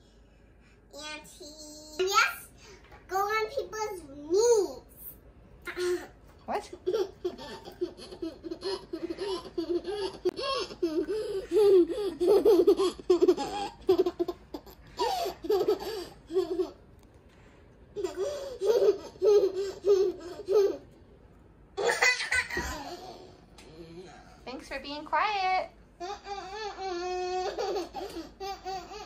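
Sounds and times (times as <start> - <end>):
girl laughing: 6.8 - 16.8.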